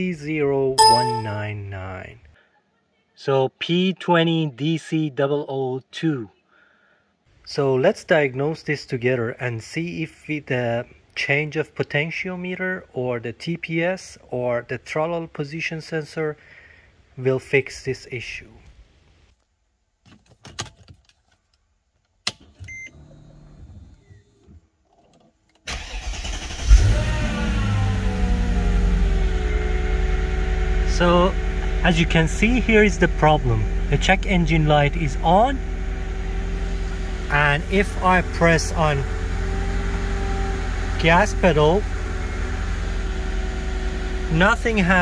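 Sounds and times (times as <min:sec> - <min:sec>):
short beep: 0:00.8 - 0:01.6
ignition clicks: 0:23.9 - 0:26.9
car engine idling: 0:25.8 - 0:45.0.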